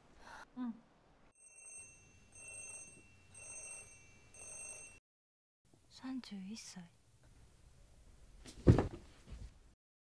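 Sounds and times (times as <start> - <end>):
electronic ringing tone: 1.4 - 5.0.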